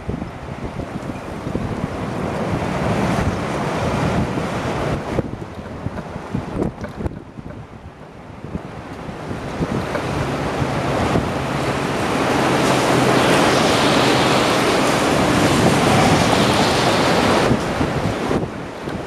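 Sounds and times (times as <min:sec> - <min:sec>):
driving rain: 0:00.0 - 0:19.0
strong gusting wind: 0:00.0 - 0:19.0
wind buffeting microphone: 0:00.0 - 0:19.0.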